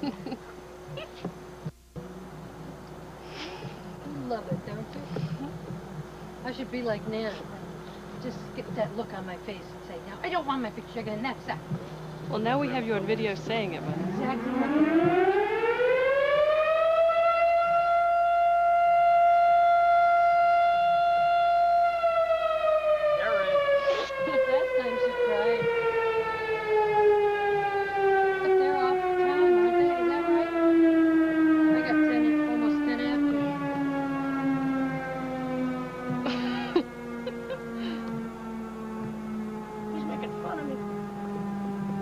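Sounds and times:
warning siren wailing: 0:08.2 - 0:42.0.

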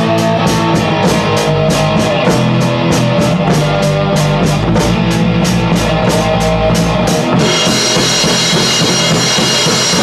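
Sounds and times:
bass guitar: 0:00.0 - 0:10.0
cymbals: 0:00.0 - 0:10.0
electric guitar: 0:00.0 - 0:10.0.

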